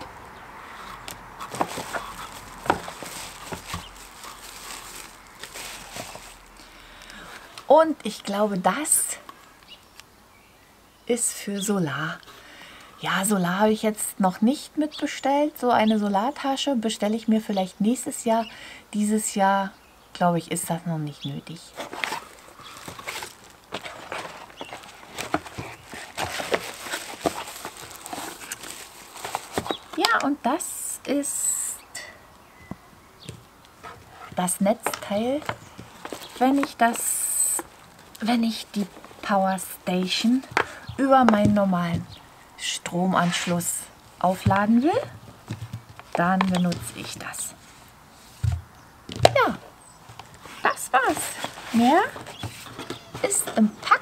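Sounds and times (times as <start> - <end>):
tissue paper and cardboard rustling: 0.8 - 6.6, 21.7 - 30.3, 33.9 - 41.9, 50.4 - 54.0.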